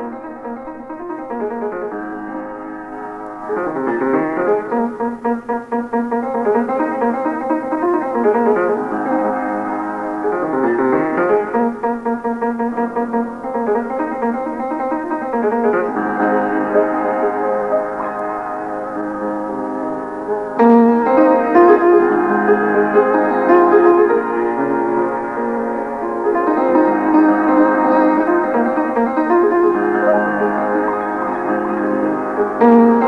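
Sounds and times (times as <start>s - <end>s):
piano melody: 0.0s - 33.0s.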